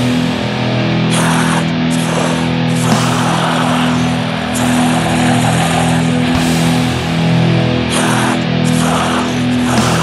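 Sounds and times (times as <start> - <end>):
dense wash of noise: 0.0 - 10.0
distorted electric guitar drone: 0.0 - 10.0.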